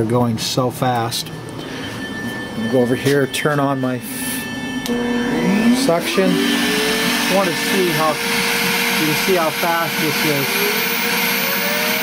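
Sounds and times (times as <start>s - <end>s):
suction motor starting up: 4.8s - 12.0s.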